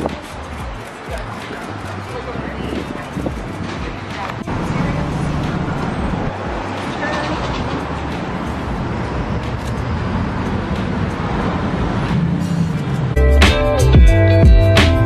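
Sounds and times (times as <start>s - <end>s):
street traffic noise: 0.0s - 15.0s.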